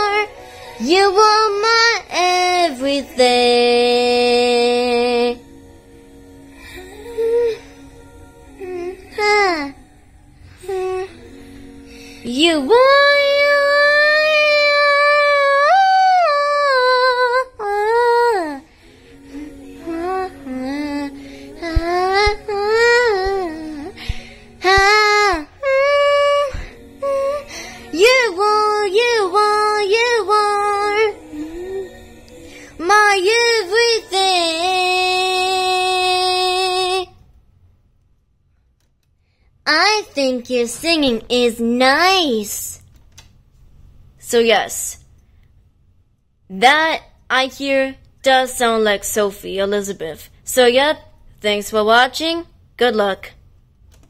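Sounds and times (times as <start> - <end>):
high voice singing karaoke: 0.0 - 37.2.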